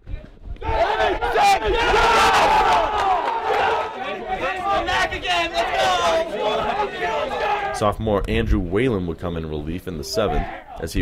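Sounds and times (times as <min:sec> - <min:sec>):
group cheering and yelling: 0:00.0 - 0:09.0, 0:09.9 - 0:11.0.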